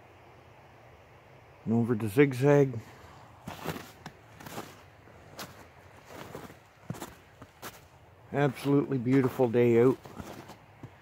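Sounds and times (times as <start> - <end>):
footsteps on snow and leaves: 3.4 - 11.0.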